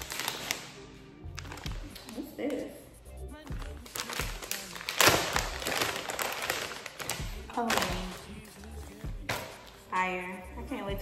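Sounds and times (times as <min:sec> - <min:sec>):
plastic bag crinkling: 0:00.0 - 0:00.7, 0:01.3 - 0:02.6, 0:03.5 - 0:08.8.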